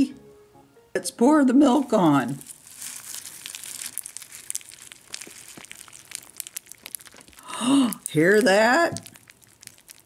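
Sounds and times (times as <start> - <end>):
cereal crackling in milk: 1.7 - 10.0.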